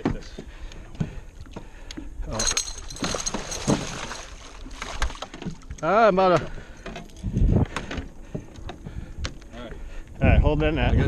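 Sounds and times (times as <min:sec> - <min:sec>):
knocks and clicks in metal boat: 0:00.0 - 0:09.4.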